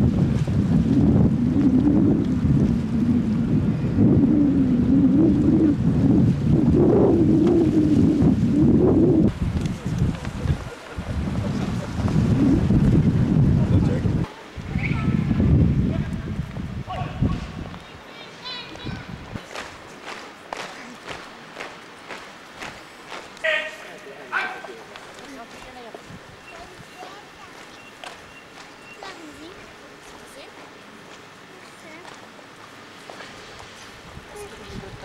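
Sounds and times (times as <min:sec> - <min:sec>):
wind buffeting microphone: 0:00.0 - 0:23.5, 0:24.4 - 0:29.8, 0:33.6 - 0:35.0.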